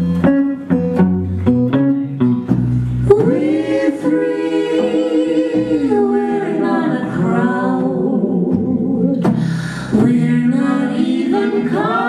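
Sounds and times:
people singing in harmony: 0:03.1 - 0:12.0.

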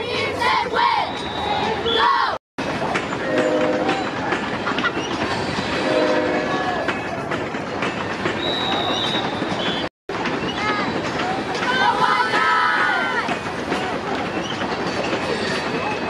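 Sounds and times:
referee's whistle: 0:01.1 - 0:02.1, 0:08.4 - 0:09.9
horn sounding: 0:05.8 - 0:06.6
crowd yelling and cheering: 0:10.6 - 0:14.2.

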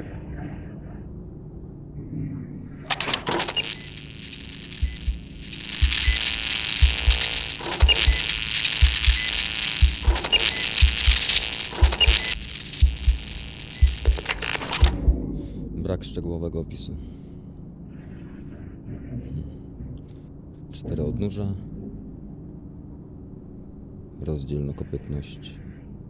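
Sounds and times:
deep pulse: 0:00.0 - 0:24.2
sharp clicks: 0:02.9 - 0:15.0
high electronic hiss: 0:03.3 - 0:15.0.

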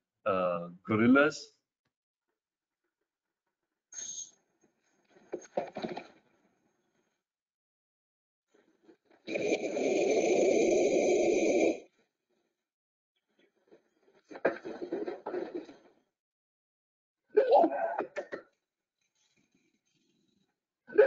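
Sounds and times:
gorilla harsh vocal outburst: 0:17.4 - 0:18.2.

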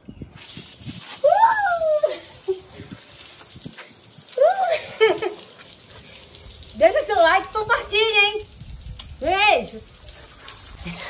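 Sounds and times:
water spraying from shower head: 0:00.4 - 0:11.0
woman crying out: 0:01.2 - 0:02.5, 0:04.3 - 0:05.1.

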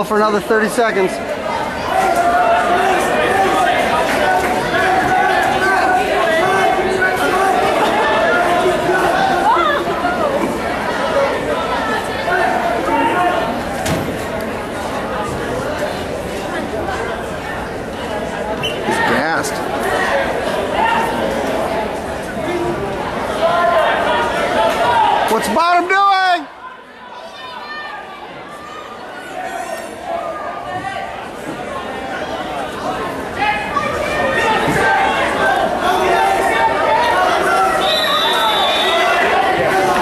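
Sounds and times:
crowd chattering and calling out: 0:00.0 - 0:40.0.

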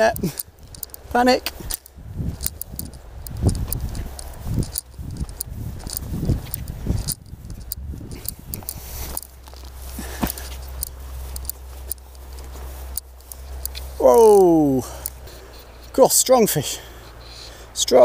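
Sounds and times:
handling rustling and clicks: 0:00.0 - 0:16.1
steady low rumble: 0:00.0 - 0:17.8.

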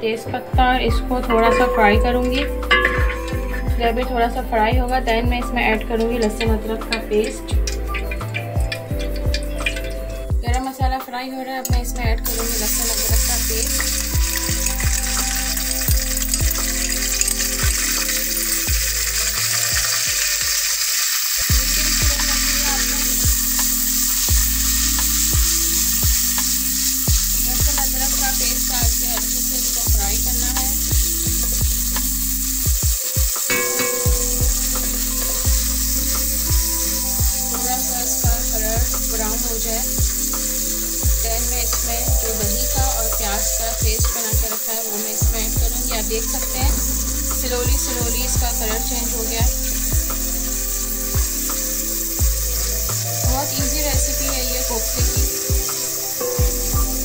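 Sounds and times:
background music with a beat: 0:00.0 - 0:57.0
paste sizzling in hot oil: 0:01.1 - 0:10.8, 0:11.6 - 0:57.0
spatula stirring in pot: 0:05.8 - 0:10.3, 0:12.2 - 0:53.1.

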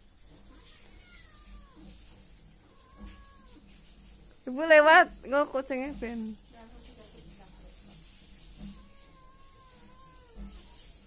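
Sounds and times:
kitten meowing: 0:00.5 - 0:01.9, 0:02.7 - 0:03.6, 0:08.6 - 0:11.0.

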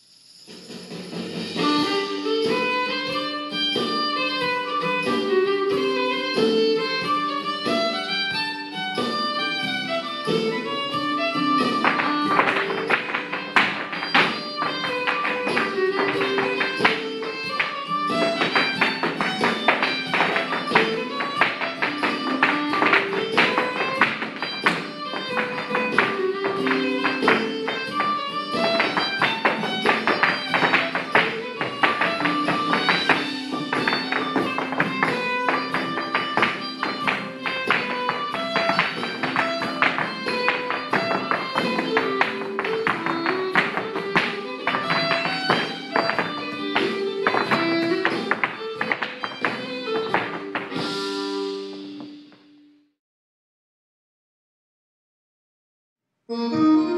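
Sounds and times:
folk dance tune: 0:00.9 - 0:52.6, 0:56.3 - 0:56.9
hard shoes clicking in step dance: 0:01.8 - 0:51.1.

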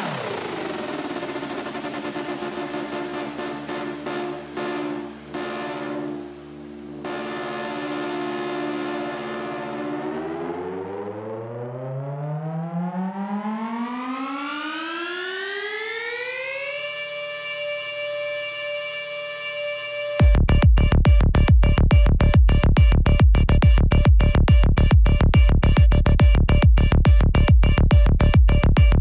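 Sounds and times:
rising synth sweep: 0:00.0 - 0:23.2
held synthesizer chords: 0:00.0 - 0:29.0.

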